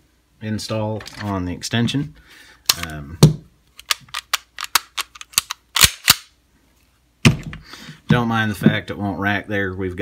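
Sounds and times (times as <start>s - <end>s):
pistol metal clicks and clacks: 3.8s - 6.3s.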